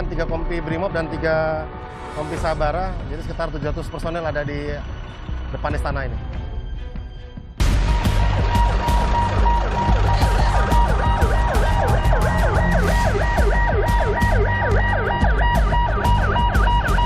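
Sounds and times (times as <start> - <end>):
music with heavy bass: 7.6 - 17.0
electronic siren yelping: 7.8 - 17.0.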